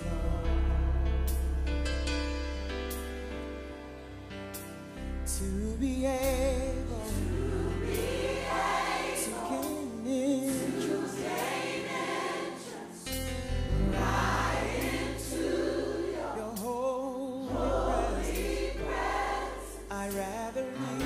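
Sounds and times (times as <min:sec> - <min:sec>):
choir singing gospel song: 0:00.0 - 0:00.8, 0:06.9 - 0:21.0
sustained bass: 0:00.0 - 0:03.8, 0:05.0 - 0:08.8, 0:13.2 - 0:16.8.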